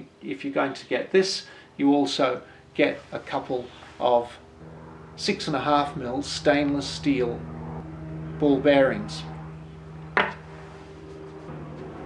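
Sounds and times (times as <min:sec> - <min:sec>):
steady low hum: 0:01.1 - 0:12.0.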